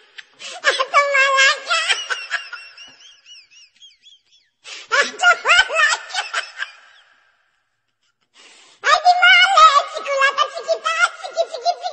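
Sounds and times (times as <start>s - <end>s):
person's wordless high voice: 0.6s - 2.2s, 4.9s - 6.1s, 8.8s - 11.9s.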